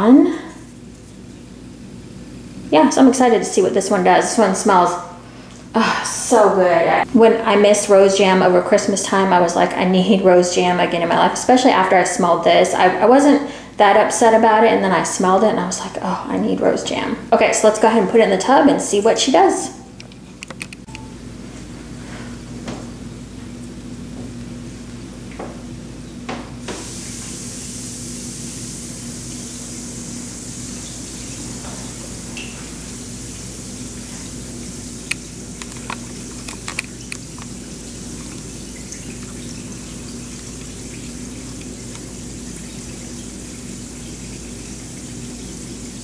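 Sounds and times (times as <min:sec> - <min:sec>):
low steady hum: 0:00.0 - 0:46.0
small clicks and pops: 0:35.1 - 0:37.5.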